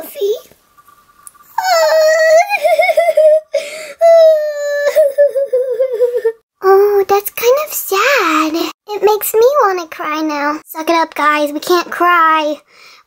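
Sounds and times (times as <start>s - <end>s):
girl crying with wavering wails: 1.6s - 6.4s.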